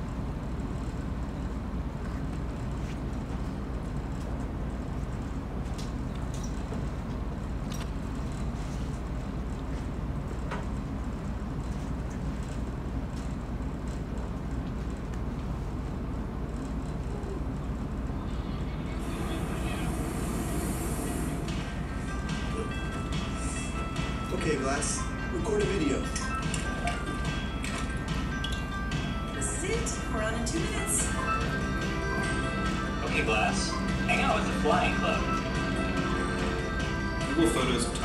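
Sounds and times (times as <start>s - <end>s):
low rumbling room noise: 0.0s - 38.0s
faint music with held tones: 15.8s - 38.0s.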